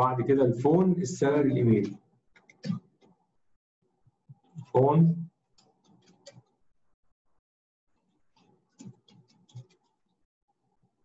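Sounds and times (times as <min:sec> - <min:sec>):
person speaking: 0:00.0 - 0:02.0, 0:04.6 - 0:05.2.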